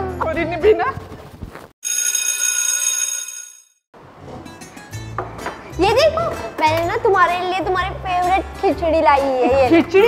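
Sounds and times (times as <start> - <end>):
electric school bell ringing: 1.8 - 3.8.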